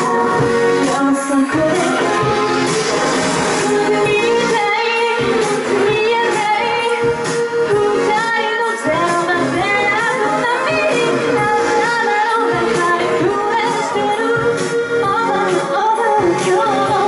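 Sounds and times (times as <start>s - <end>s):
pop backing track with beat: 0.0s - 17.0s
woman singing into microphone: 0.0s - 17.0s.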